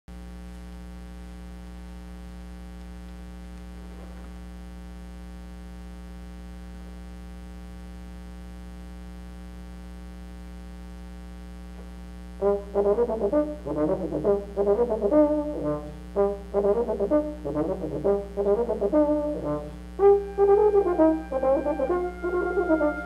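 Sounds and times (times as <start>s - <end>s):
electrical mains hum: 0.1s - 23.0s.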